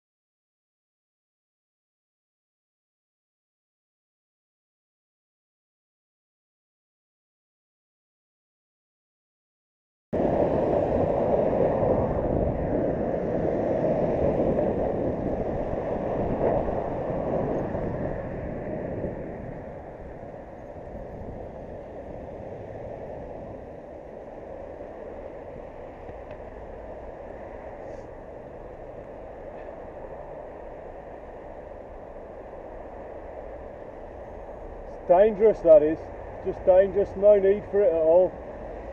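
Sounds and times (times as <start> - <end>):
road traffic: 10.2 - 38.9
wind noise on microphone: 10.2 - 38.9.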